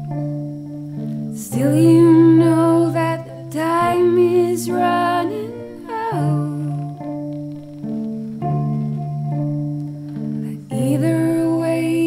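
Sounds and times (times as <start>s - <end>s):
low sustained cello notes: 0.0s - 12.0s
woman singing wordless melody: 1.3s - 7.4s, 10.4s - 12.0s.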